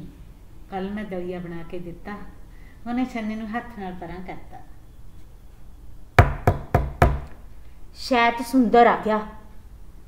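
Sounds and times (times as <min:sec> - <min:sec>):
knocking on wooden door: 0:06.2 - 0:07.3.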